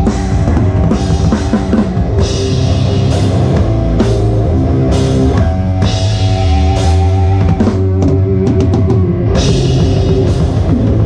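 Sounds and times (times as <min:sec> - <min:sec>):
fast drumming: 0:00.0 - 0:11.0
metal band playing: 0:00.0 - 0:11.0.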